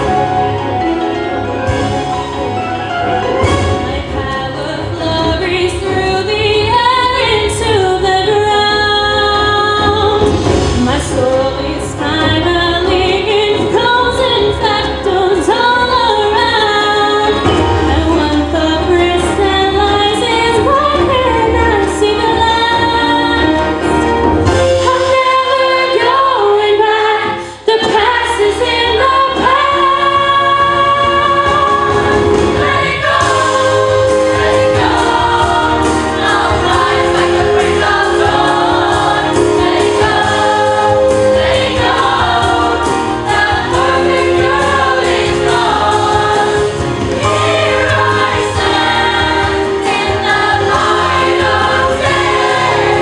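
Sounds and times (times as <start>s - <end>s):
musical accompaniment: 0.0s - 53.0s
youth choir singing: 25.0s - 53.0s.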